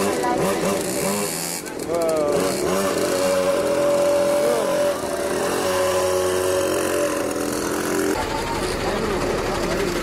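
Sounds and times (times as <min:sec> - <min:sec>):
small engines running: 0:00.0 - 0:10.0.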